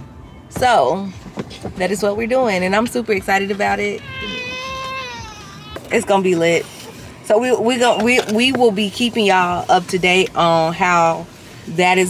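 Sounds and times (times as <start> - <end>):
baby whining cry: 4.0 - 5.9.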